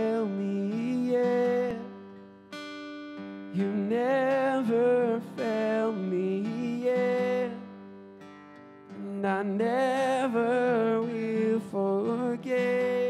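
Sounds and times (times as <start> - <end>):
man singing: 0.0 - 2.2, 3.5 - 8.0, 8.9 - 13.0
strummed acoustic guitar: 0.0 - 13.0.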